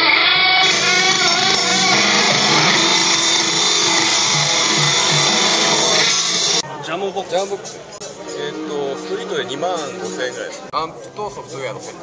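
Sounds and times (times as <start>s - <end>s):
distorted electric guitar: 0.0s - 6.6s.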